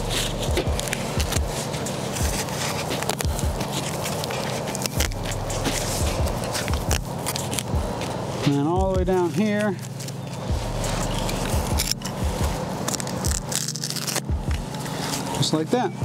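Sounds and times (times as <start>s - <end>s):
foam seal crinkling: 0.0s - 8.2s, 9.1s - 15.3s.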